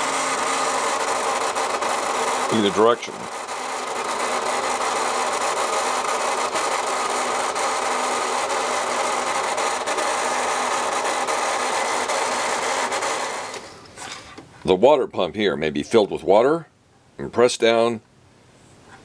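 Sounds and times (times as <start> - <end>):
toy motor and gears running: 0.0 - 13.7.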